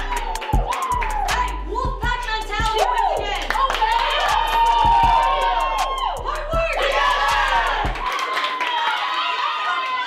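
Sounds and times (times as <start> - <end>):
background music with bass beat: 0.0 - 8.0
women shouting and cheering: 0.0 - 10.0.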